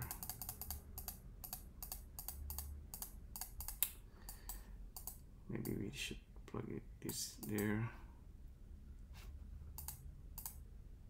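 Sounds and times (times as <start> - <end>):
keyboard and mouse clicks: 0.0 - 5.8, 7.1 - 7.8, 9.8 - 10.6.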